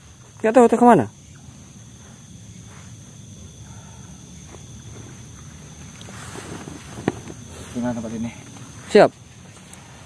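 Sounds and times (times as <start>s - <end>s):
short rustle: 4.4s - 10.0s.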